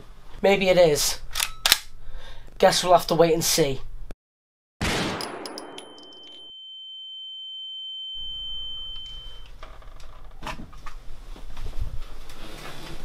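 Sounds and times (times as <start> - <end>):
pistol gunshot crack: 4.8 - 5.8
high ear-ringing tone: 5.6 - 9.6
room noise: 8.2 - 13.0.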